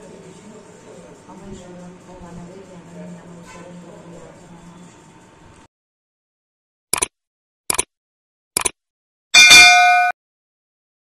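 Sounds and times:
metallic bell ding: 0:09.4 - 0:10.2.

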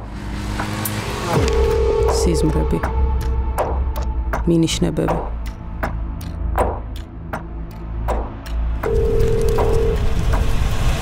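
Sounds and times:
steady tone: 0:01.4 - 0:04.2.

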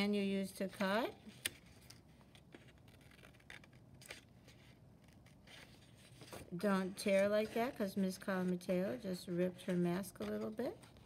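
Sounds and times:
paper rustling: 0:01.2 - 0:08.8.

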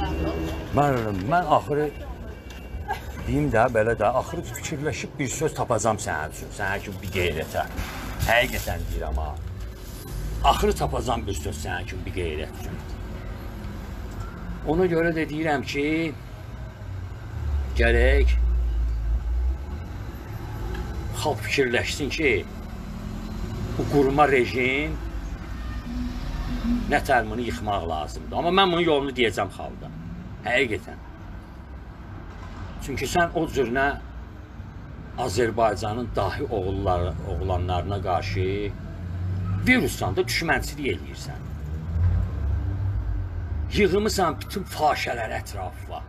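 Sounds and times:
man speaking: 0:03.2 - 0:09.4.

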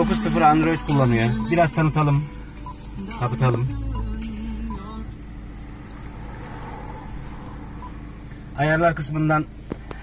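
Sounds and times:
car low rumble: 0:00.0 - 0:10.0.

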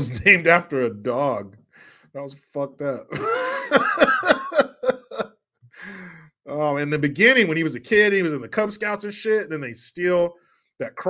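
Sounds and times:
man laughing hard: 0:03.1 - 0:05.3.

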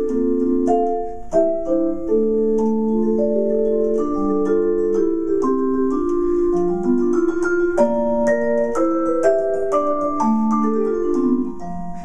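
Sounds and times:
vibraphone playing slow chords: 0:00.0 - 0:12.0.

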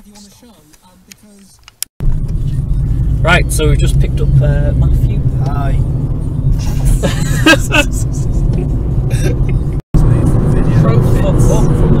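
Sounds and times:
road noise: 0:00.0 - 0:12.0
car engine rumble inside cabin: 0:02.0 - 0:12.0.

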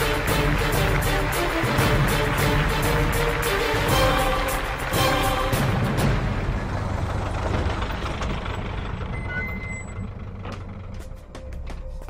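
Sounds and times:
soundtrack music: 0:00.0 - 0:07.6
low vehicle engine rumble: 0:00.0 - 0:12.0.

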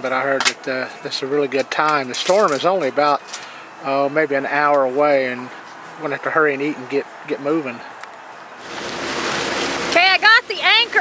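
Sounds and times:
people talking: 0:00.0 - 0:03.2, 0:03.8 - 0:07.9, 0:09.9 - 0:11.0
wind and water rushing: 0:08.6 - 0:10.2.

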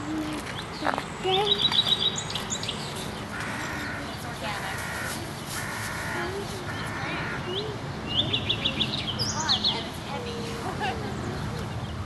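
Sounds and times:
bird harsh calls: 0:00.5 - 0:09.8.

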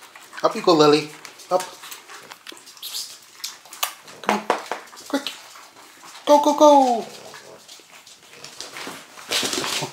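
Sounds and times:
puppies scrambling on tiled floor: 0:00.0 - 0:09.9.

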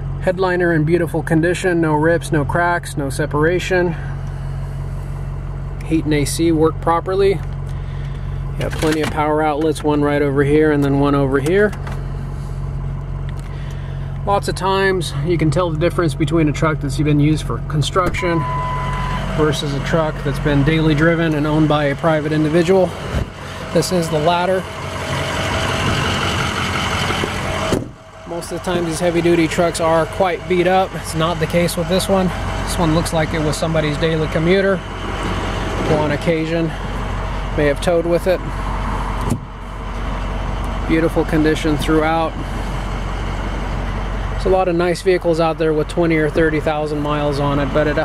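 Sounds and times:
diesel engine idling: 0:00.0 - 0:48.0.

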